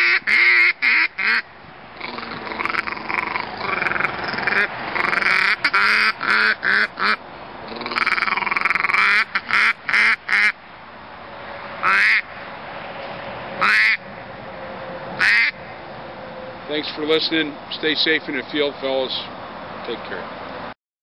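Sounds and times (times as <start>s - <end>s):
duck call quacks: 0.0s - 1.4s, 2.0s - 10.6s, 11.8s - 12.2s, 13.6s - 14.0s, 15.2s - 15.6s.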